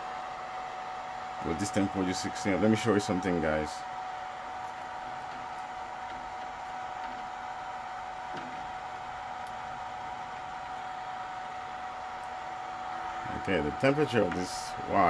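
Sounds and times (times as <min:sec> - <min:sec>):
thin whine: 0:00.0 - 0:15.0.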